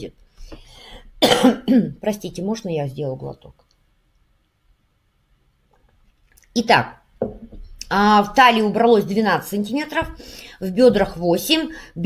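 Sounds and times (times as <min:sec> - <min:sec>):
woman coughing: 0:01.2 - 0:02.0.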